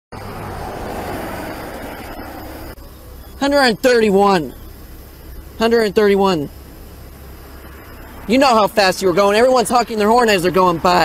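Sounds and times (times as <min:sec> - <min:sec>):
highway traffic rushing: 0:00.1 - 0:11.0.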